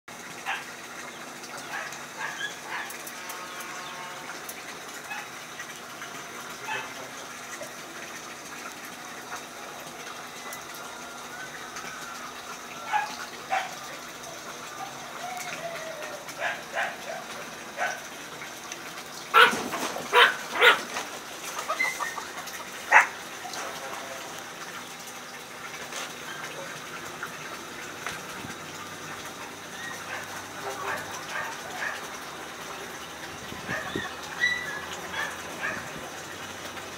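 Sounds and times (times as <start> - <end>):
small dogs yipping: 1.6 - 3.0, 12.9 - 13.8, 14.7 - 18.0, 19.3 - 20.9, 21.6 - 23.2, 29.7 - 32.1, 33.6 - 36.0
sharp high dog barks: 19.4 - 20.8.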